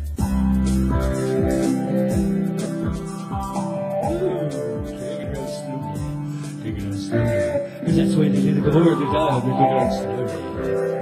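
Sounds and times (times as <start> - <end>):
drum beat: 0.0 - 10.0
bass: 0.0 - 11.0
keyboard: 0.0 - 11.0
electric guitar: 0.2 - 11.0.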